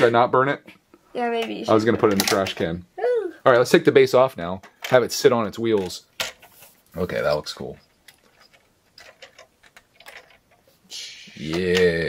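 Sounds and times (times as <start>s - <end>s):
plastic toy parts clicking on stone: 8.1s - 10.6s.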